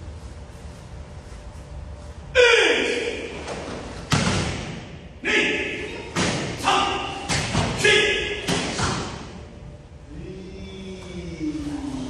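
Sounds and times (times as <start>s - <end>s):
sharp vocal shouts: 2.4s - 3.3s, 5.2s - 8.6s.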